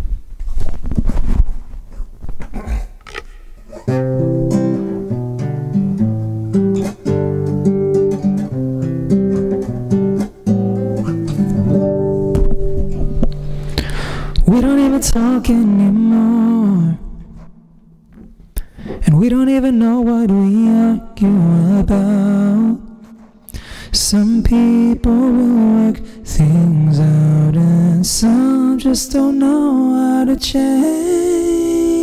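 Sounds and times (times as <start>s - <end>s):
classical guitar chords: 3.8s - 14.4s
guitar handling knocks: 9.3s - 13.9s
person singing with vibrato: 13.5s - 17.6s, 19.0s - 32.0s.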